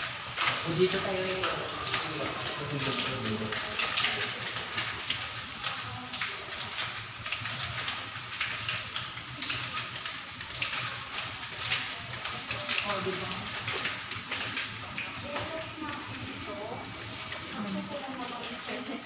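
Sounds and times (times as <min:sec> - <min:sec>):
clicking footsteps in hallway: 0:00.0 - 0:19.0.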